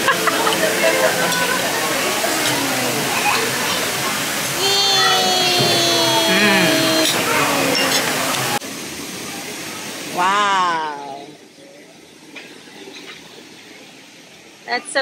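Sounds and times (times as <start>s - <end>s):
background chatter: 0.0s - 15.0s
long held voice-like note: 4.6s - 8.6s.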